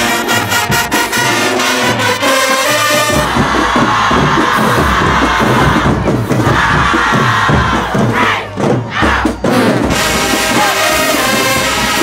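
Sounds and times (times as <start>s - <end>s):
brass playing: 0.0s - 3.4s, 9.6s - 12.0s
marching band shouting in unison: 0.0s - 12.0s
steady low drum beat: 3.0s - 12.0s.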